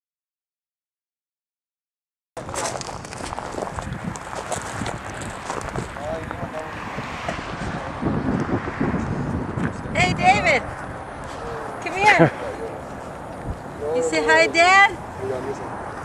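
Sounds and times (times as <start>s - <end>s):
wind buffeting microphone: 2.4s - 16.0s
faint voices talking: 9.4s - 16.0s.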